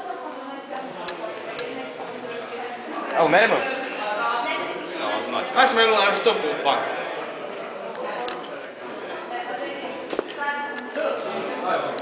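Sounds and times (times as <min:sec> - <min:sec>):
indistinct background talking: 0:00.0 - 0:12.0.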